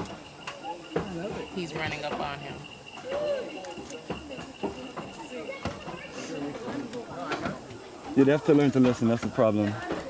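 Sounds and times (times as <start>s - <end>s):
people talking: 0.4s - 10.0s.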